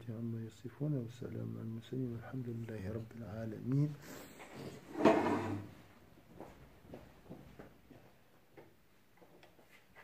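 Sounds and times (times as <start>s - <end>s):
chair scraping on floor: 4.4s - 5.9s.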